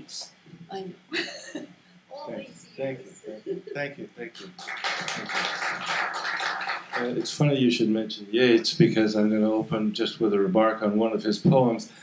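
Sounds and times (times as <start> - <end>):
audience applauding: 4.4 - 7.5.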